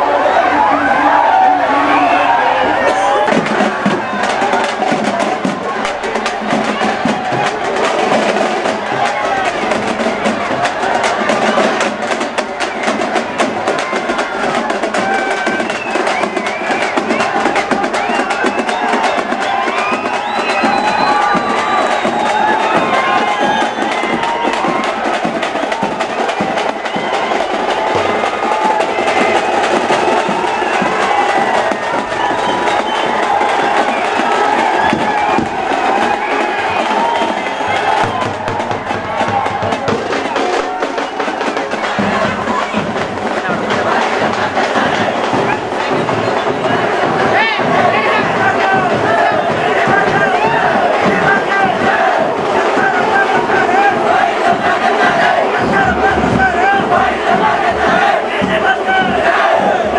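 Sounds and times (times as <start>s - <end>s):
crowd shouting and cheering: 0.0s - 59.9s
fast drumming: 0.0s - 59.9s.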